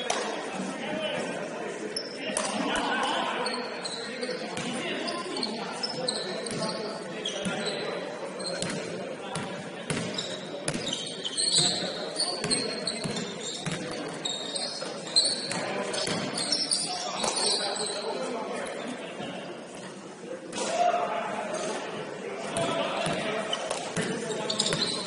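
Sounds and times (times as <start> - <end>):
sneaker squeaks: 2.0 - 18.2, 22.6 - 25.0.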